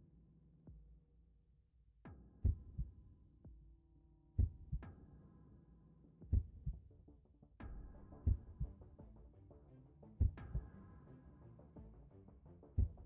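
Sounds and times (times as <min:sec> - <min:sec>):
heartbeat double thumps: 0:04.4 - 0:04.8, 0:06.3 - 0:06.8, 0:07.8 - 0:08.8, 0:10.2 - 0:10.7, 0:12.8 - 0:13.0.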